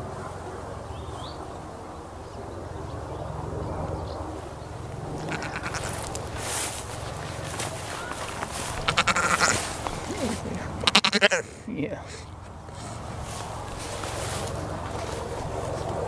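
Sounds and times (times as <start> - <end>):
steady low rumble: 0.0 - 16.0
goat bleating: 5.2 - 6.4, 8.0 - 11.6.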